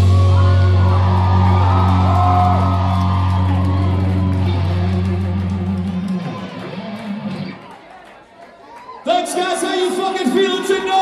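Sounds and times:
audience whooping and shouting: 0.0s - 9.6s.

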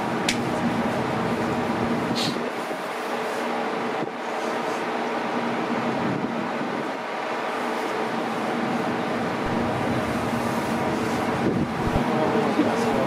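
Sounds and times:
ship engines humming: 0.0s - 13.0s
wind on microphone: 9.4s - 12.1s.

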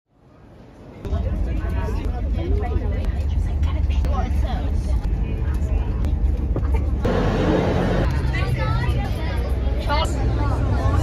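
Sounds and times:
children chattering and calling: 1.0s - 11.0s
deep rumble: 1.0s - 11.0s.

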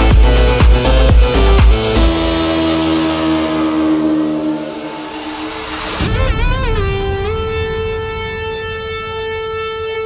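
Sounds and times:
held synth chord: 0.0s - 10.0s.

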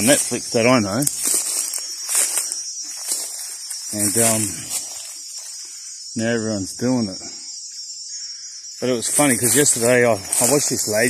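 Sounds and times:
footsteps crunching through dry leaves: 0.0s - 5.8s, 9.0s - 11.0s
high-pitched insect hum: 0.0s - 11.0s.

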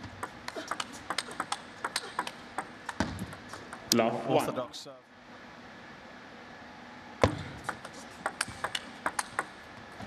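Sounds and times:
table tennis ball clicking: 0.2s - 4.0s, 7.7s - 9.7s.

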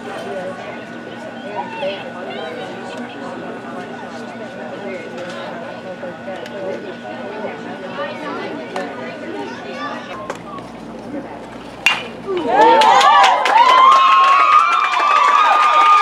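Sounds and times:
voices chattering: 0.0s - 13.1s
bat hitting ball: 11.8s - 12.4s.

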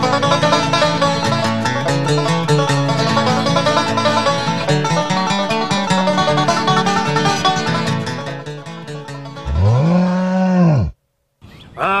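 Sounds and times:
banjo bluegrass music: 0.0s - 9.8s
long low moo-like call: 9.4s - 11.0s.

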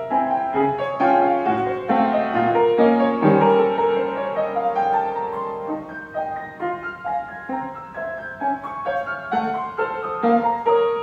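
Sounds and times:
upright piano melody: 0.0s - 11.0s.

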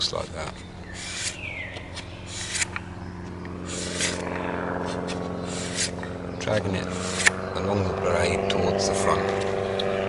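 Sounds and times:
knife scraping on sandpaper: 0.9s - 2.8s, 3.6s - 4.2s, 4.8s - 6.0s, 6.9s - 7.4s.

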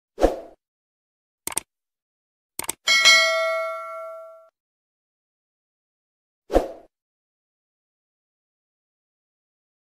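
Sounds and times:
mouse clicks: 1.5s - 1.7s, 2.6s - 2.8s
notification bell ding: 2.9s - 4.5s.

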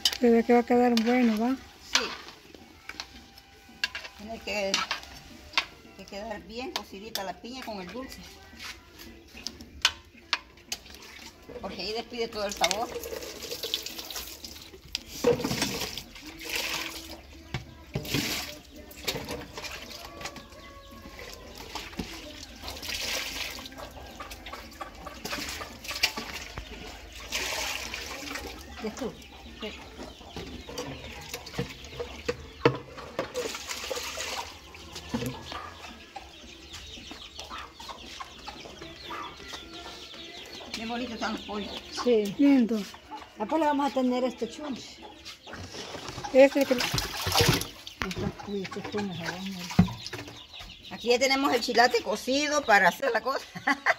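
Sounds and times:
hens clucking: 0.0s - 53.9s.

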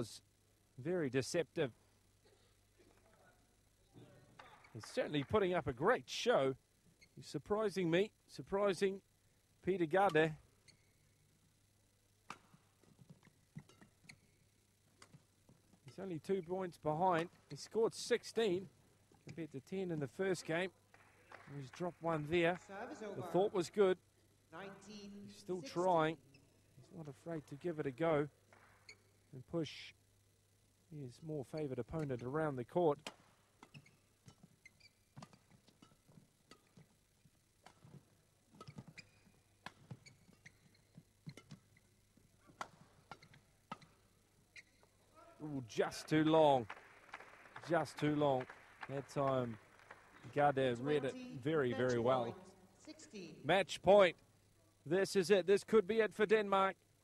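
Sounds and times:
rackets striking shuttlecock: 12.2s - 14.3s, 33.0s - 37.0s, 37.6s - 41.8s, 42.5s - 44.9s
shoes squeaking on court: 12.3s - 14.4s, 33.0s - 37.0s, 37.6s - 45.1s.

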